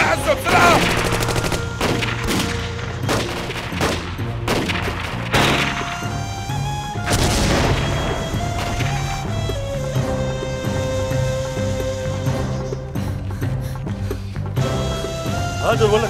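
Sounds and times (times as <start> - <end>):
dramatic music score: 0.0 - 16.0
gunshots: 0.5 - 6.3, 7.0 - 9.0.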